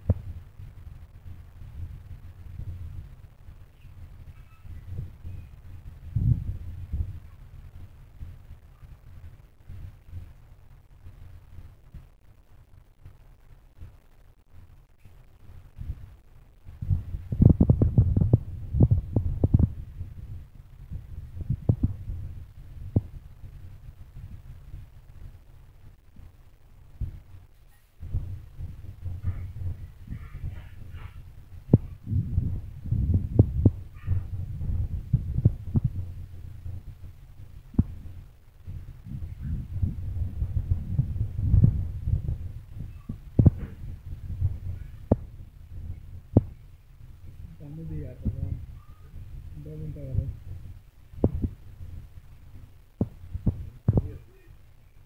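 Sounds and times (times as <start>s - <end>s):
low thuds and rumbling: 15.7s - 54.2s.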